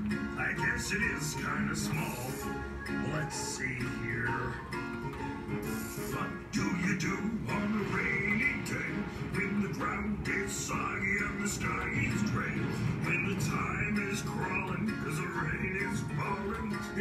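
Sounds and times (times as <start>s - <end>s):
instrumental music: 0.0s - 17.0s.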